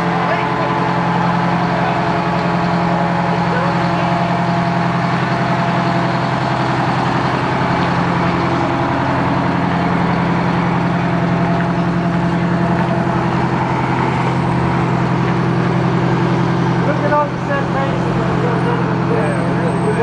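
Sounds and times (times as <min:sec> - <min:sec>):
truck engine idling: 0:00.0 - 0:20.0.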